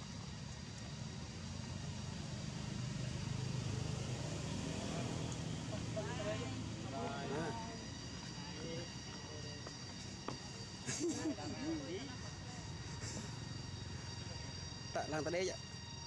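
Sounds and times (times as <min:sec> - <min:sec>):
low engine rumble: 0:00.0 - 0:16.0.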